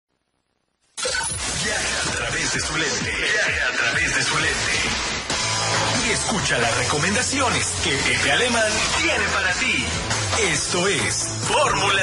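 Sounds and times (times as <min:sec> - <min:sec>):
radio intro jingle: 0:01.0 - 0:12.0.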